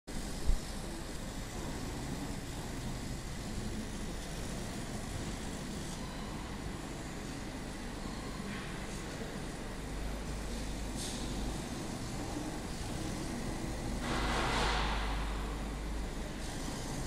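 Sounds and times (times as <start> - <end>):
laser cutting machine running: 0.1 - 17.0
machine fan noise: 0.1 - 17.0.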